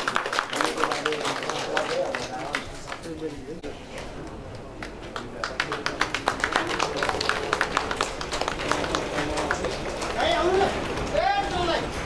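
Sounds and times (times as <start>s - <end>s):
people clapping: 0.0s - 3.4s, 4.2s - 11.8s.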